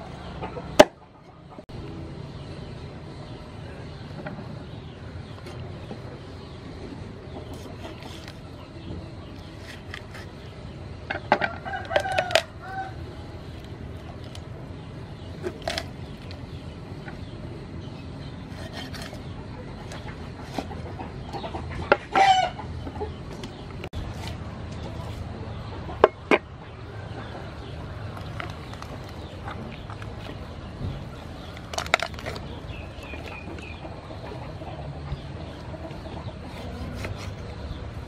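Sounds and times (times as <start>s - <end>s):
rooster crowing: 11.5s - 13.1s.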